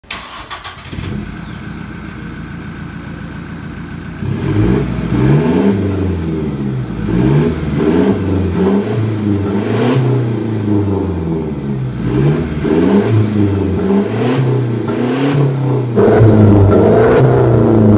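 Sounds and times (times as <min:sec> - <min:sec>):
diesel engine idling and revving: 0:00.0 - 0:17.9.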